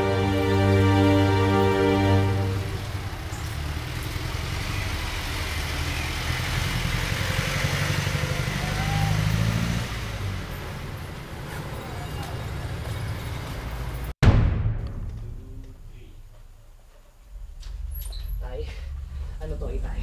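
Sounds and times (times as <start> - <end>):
street traffic: 0.0 - 14.2
vehicle engine running: 2.3 - 11.5.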